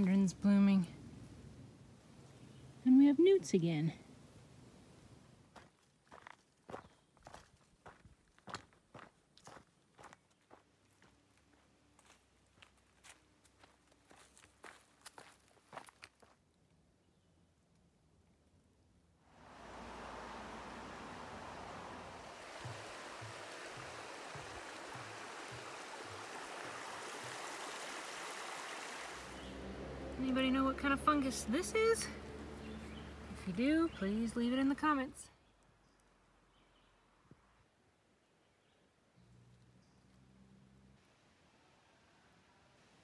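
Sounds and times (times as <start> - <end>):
footsteps on dirt trail: 5.5 - 16.4, 22.2 - 27.5
stream rushing: 19.3 - 33.5
footsteps on wooden footbridge: 21.6 - 27.8.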